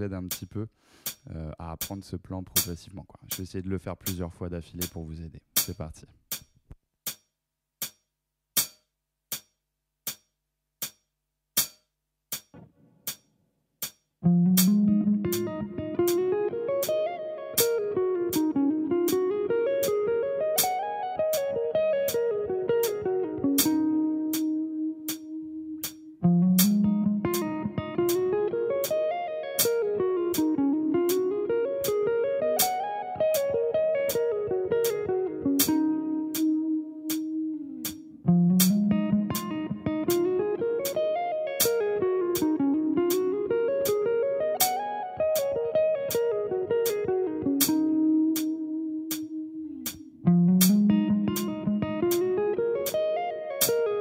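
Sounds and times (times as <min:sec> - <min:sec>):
metronome click: 0:13.8 - 0:54.0
electric guitar lick: 0:14.2 - 0:54.0.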